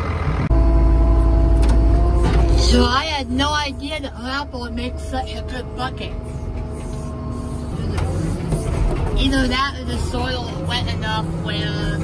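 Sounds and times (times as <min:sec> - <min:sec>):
steady engine hum: 0:00.0 - 0:12.0
tractor engine rumbling: 0:00.0 - 0:12.0.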